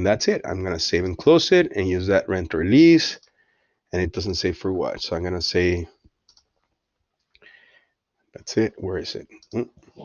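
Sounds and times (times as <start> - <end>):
computer mouse clicks: 6.2 - 6.7.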